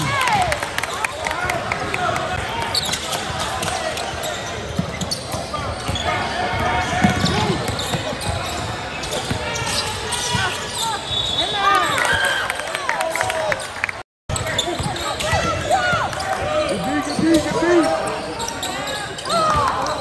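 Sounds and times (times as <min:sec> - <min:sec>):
spectators talking: 0:00.0 - 0:20.0
sneakers squeaking: 0:02.6 - 0:12.4, 0:14.3 - 0:20.0.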